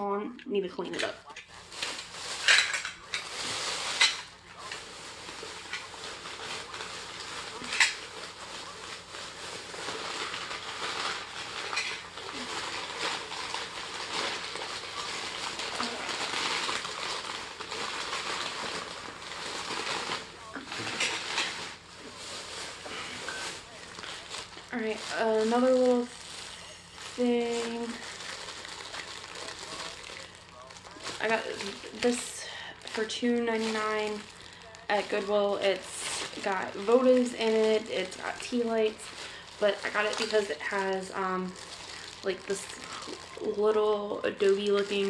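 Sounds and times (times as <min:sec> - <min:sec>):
plastic bag rustling and crinkling: 0:00.6 - 0:45.0.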